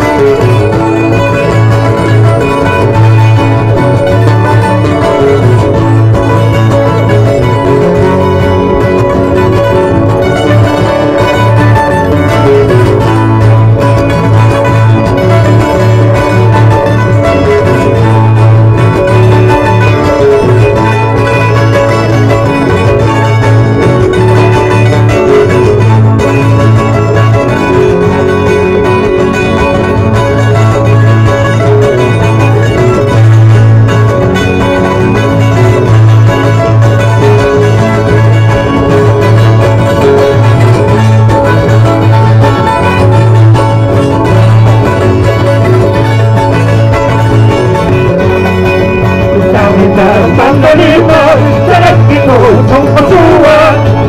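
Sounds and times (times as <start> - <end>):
string band strumming and plucking: 0.0 - 54.0.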